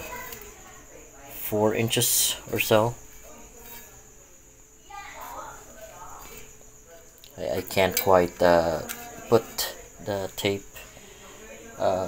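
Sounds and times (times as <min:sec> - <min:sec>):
faint low hum: 0:00.0 - 0:12.0
steady high hiss: 0:00.0 - 0:12.0.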